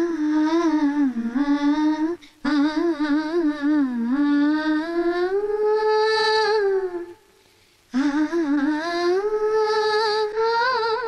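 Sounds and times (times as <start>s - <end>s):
person humming a slow melody: 0.0s - 7.3s, 7.9s - 11.0s.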